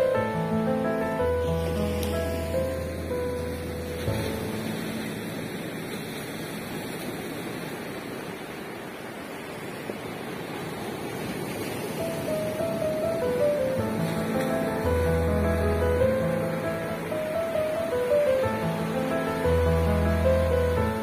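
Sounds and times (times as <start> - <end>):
waves washing onto beach: 0.0 - 21.0
background music: 13.4 - 21.0.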